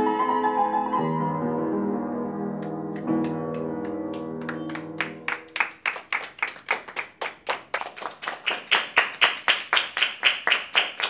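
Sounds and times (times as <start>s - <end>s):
hands clapping rhythmically: 2.6s - 11.0s.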